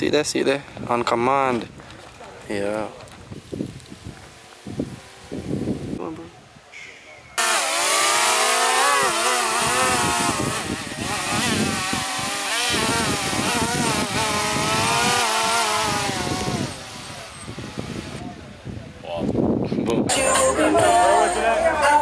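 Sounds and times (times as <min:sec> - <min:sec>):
drone propellers buzzing: 0:07.4 - 0:18.2.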